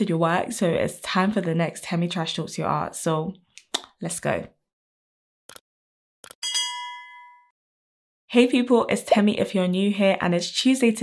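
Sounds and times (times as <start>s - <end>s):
bell-like notification ding: 6.4s - 7.6s.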